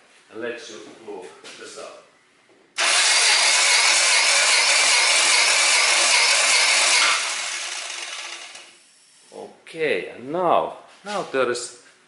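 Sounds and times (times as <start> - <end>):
engine cranking on starter motor: 2.8 - 8.8.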